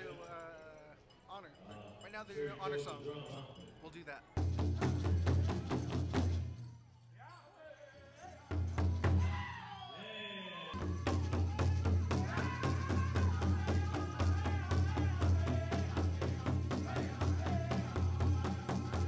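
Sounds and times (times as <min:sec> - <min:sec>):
singers in high voices: 0:09.0 - 0:19.0
big drum beating: 0:10.8 - 0:19.0.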